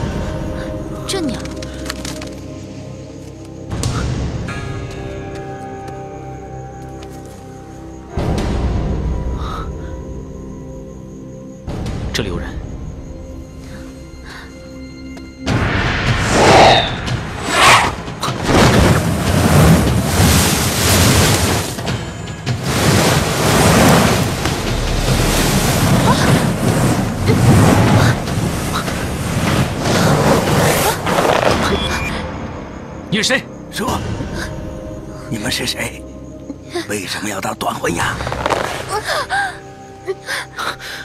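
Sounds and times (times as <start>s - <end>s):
soft background score: 0.0s - 41.0s.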